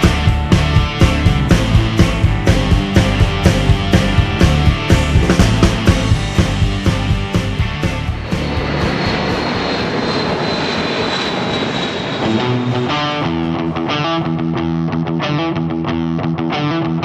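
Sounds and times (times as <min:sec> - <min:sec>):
guitar playing chords: 0:00.0 - 0:10.3, 0:12.0 - 0:17.0
jet aircraft whine: 0:00.0 - 0:15.0.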